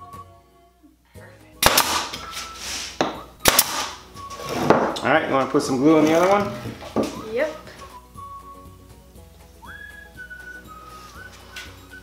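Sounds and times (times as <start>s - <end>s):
nail gun shots: 1.6s - 2.2s, 3.4s - 4.0s.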